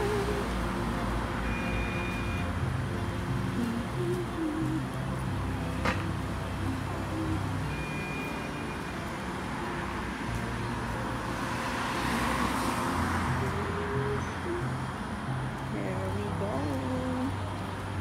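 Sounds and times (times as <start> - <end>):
cars going by: 0.0 - 18.0.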